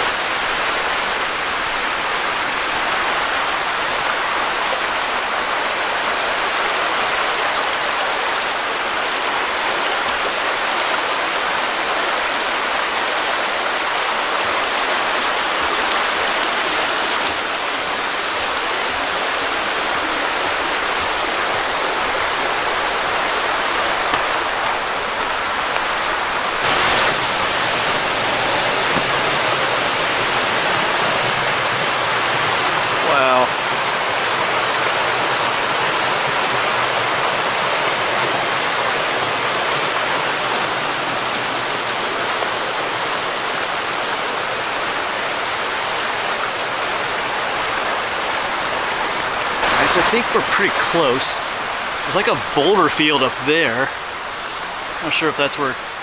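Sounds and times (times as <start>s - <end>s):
water rushing over rapids: 0.0s - 56.0s.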